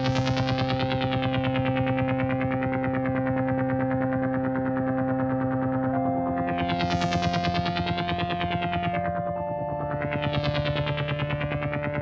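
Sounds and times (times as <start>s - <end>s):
synthesized ambient drone: 0.0s - 12.0s.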